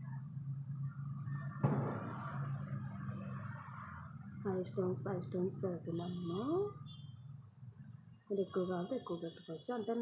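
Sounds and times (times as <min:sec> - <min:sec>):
sharp knock: 0:01.6 - 0:02.2.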